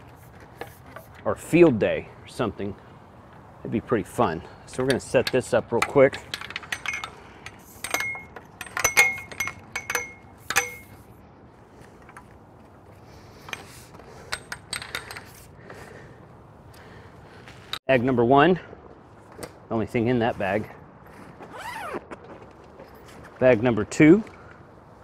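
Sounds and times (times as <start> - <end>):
metal tripod clinks and clicks: 4.7 - 11.1, 13.4 - 15.5.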